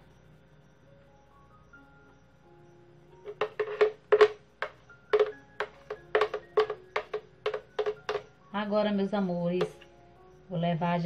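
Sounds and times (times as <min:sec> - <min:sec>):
faint background music: 0:00.0 - 0:11.0
spoon knocking plastic jug: 0:03.2 - 0:08.3, 0:09.6 - 0:09.8.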